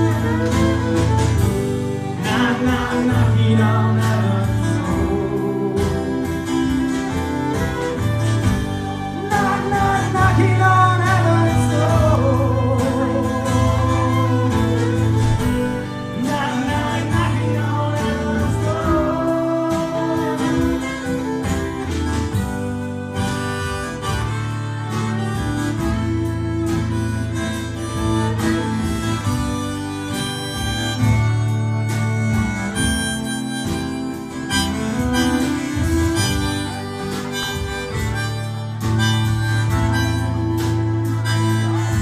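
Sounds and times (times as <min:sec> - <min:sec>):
drums: 0:00.0 - 0:42.0
strummed acoustic guitar: 0:00.0 - 0:42.0
violin melody: 0:00.0 - 0:42.0.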